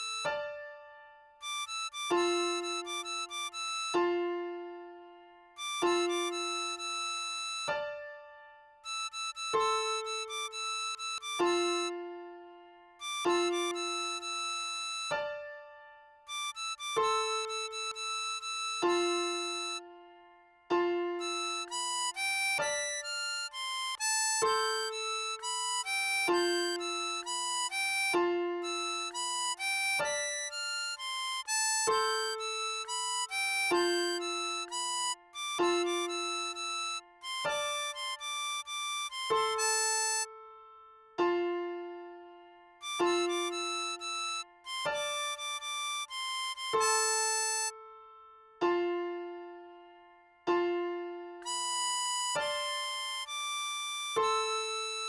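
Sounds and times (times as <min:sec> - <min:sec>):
harmonica melody: 0:00.0 - 0:49.8, 0:50.5 - 0:55.0.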